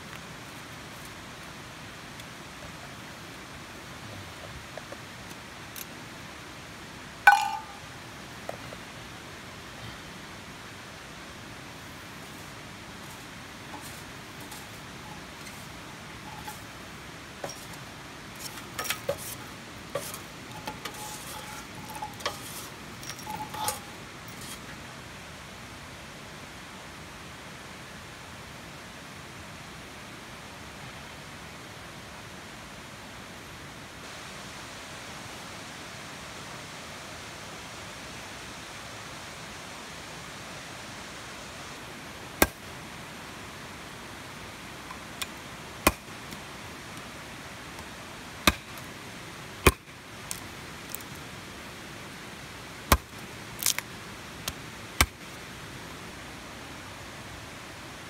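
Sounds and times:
metallic scrapes and clinks: 0:07.3 - 0:07.8, 0:13.0 - 0:16.8, 0:17.4 - 0:17.8, 0:18.4 - 0:24.8
machete chopping wood: 0:42.4 - 0:42.6, 0:45.8 - 0:46.1, 0:48.5 - 0:48.8, 0:49.6 - 0:49.9, 0:52.9 - 0:53.8, 0:55.0 - 0:55.2.

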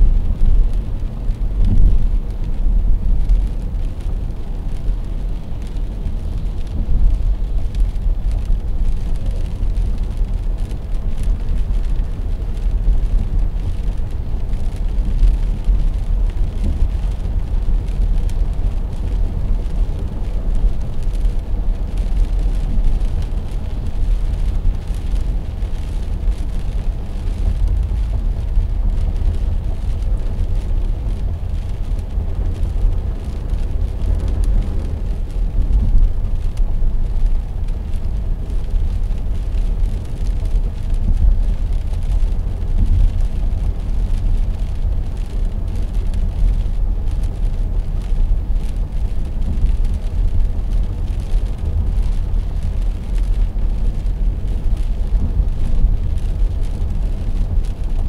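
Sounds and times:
road and engine rumble in car: 0:00.0 - 0:58.0.

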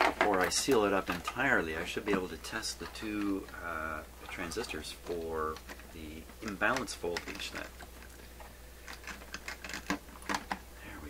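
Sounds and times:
clicks and knocks in wooden cabinet: 0:00.0 - 0:02.3.

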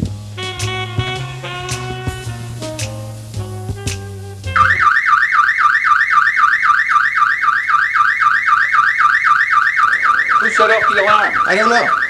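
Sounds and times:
music: 0:00.0 - 0:04.8
door alarm warbling tone: 0:04.6 - 0:12.0.

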